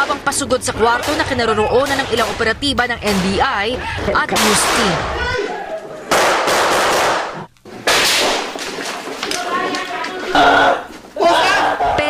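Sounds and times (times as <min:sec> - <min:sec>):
gunshots ringing: 0:00.0 - 0:03.5, 0:04.2 - 0:05.3, 0:06.1 - 0:08.7.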